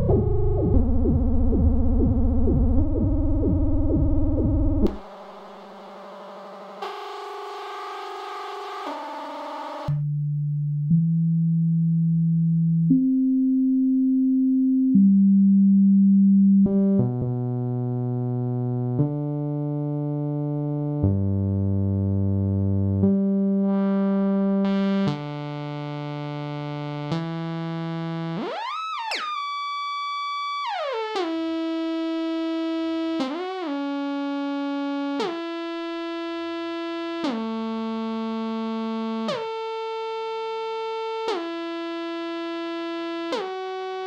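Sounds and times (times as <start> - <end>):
buzzy synthesizer note: 0.0 - 10.0
synthesizer sine-wave notes: 0.0 - 44.0.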